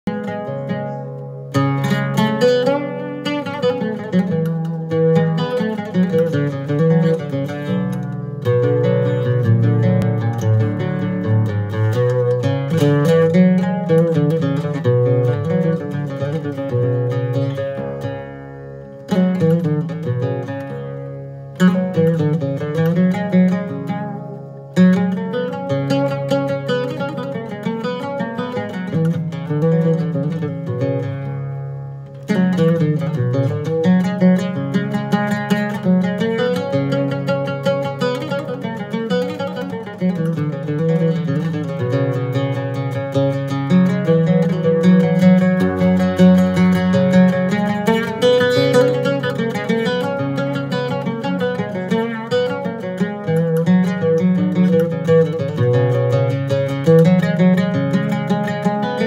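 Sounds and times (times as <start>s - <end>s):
oud plucked melody: 0.0s - 59.0s.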